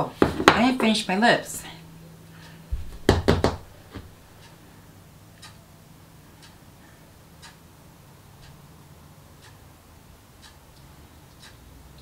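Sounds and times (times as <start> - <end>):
clock ticking: 5.4 - 5.7, 6.4 - 6.6, 7.3 - 7.7, 8.4 - 8.6, 9.3 - 9.7, 10.3 - 12.0.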